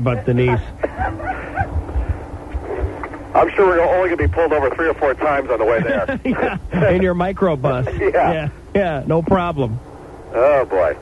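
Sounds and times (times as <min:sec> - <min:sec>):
laughter over phone line: 0:00.2 - 0:01.8, 0:05.7 - 0:07.0
low thumps: 0:00.6 - 0:03.4.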